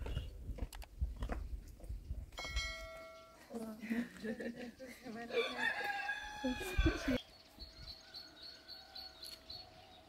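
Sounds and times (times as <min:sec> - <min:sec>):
ringing clink of bricks: 0:02.4 - 0:03.5.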